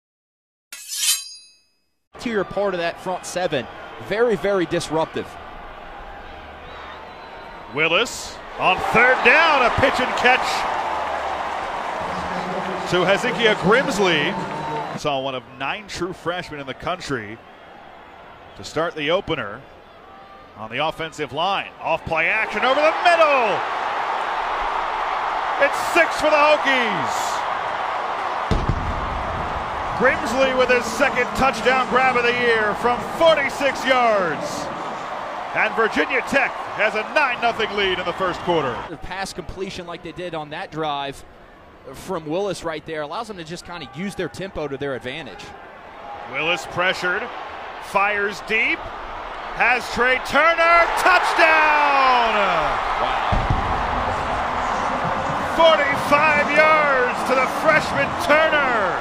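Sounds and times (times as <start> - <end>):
metallic chime ringing: 0.8 - 1.9
stadium crowd cheering: 2.2 - 59.0.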